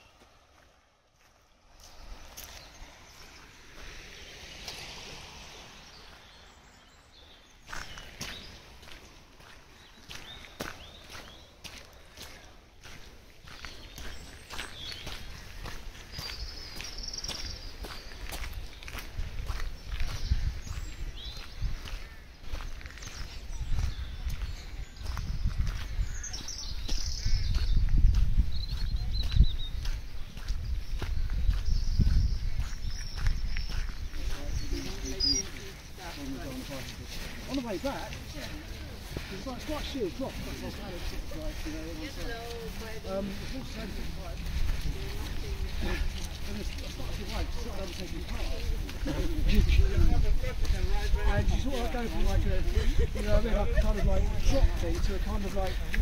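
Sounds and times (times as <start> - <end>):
stream flowing: 0.0 - 9.8
footsteps on muddy ground: 0.0 - 56.0
birds calling: 1.4 - 56.0
wind rumbling on microphone: 13.4 - 36.0, 40.7 - 56.0.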